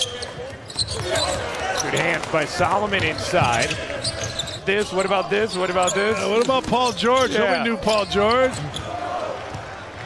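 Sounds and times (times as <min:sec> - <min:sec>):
arena crowd murmur: 0:00.2 - 0:10.0.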